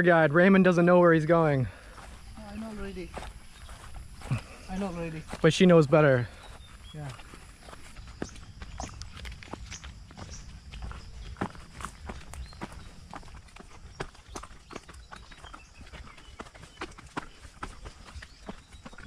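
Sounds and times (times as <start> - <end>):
footsteps on rocky dirt path: 1.2 - 19.0
stones clacking underfoot: 7.0 - 19.0.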